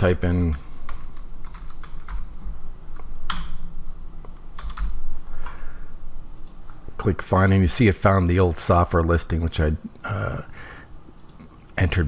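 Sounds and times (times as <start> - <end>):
computer keyboard keystrokes: 0.9 - 2.3, 4.6 - 5.6.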